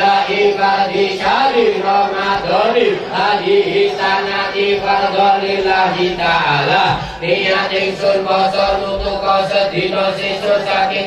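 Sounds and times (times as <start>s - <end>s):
men chanting devotional chant: 0.0s - 11.0s.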